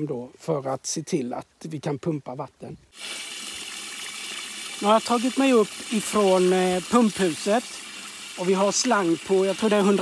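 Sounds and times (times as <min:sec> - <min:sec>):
water rushing into a tub: 0:03.0 - 0:10.0.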